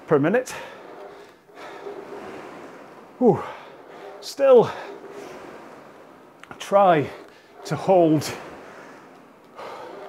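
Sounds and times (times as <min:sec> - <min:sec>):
rowing machine flywheel rushing: 0:00.0 - 0:10.0.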